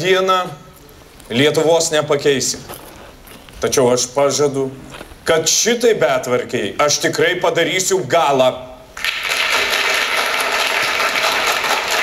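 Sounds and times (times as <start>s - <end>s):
audience applauding: 9.0s - 12.0s.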